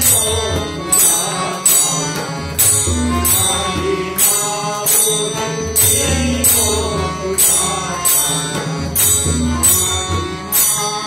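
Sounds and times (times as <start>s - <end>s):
harmonium: 0.0s - 11.0s
tabla drums: 0.0s - 11.0s.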